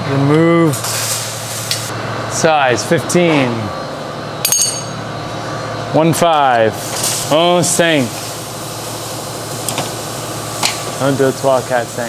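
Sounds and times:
workshop background hum: 0:00.0 - 0:12.0.

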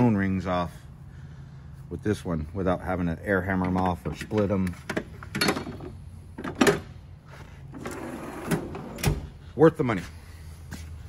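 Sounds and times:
tool box drawer rolling shut: 0:07.7 - 0:09.3.

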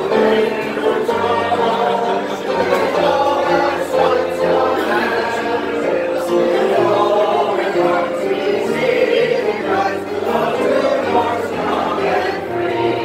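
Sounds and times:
crowd singing in chorus: 0:00.0 - 0:13.0
organ sustained chords: 0:00.0 - 0:13.0.

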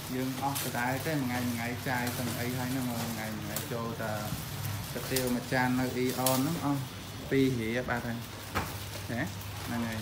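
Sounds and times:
paper and plastic rustling: 0:00.0 - 0:10.0.

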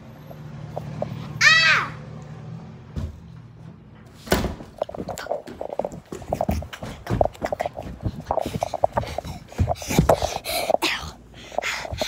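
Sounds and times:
breathy huffs: 0:07.7 - 0:12.0.

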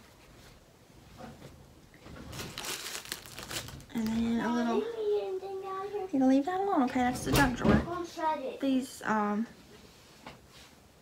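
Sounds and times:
packaging crinkling and rustling: 0:02.1 - 0:04.4.

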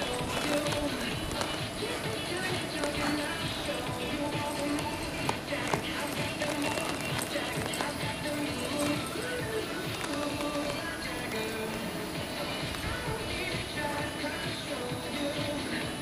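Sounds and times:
horse hoofbeats on soft dirt: 0:00.0 - 0:16.0
music from a radio: 0:00.0 - 0:16.0.

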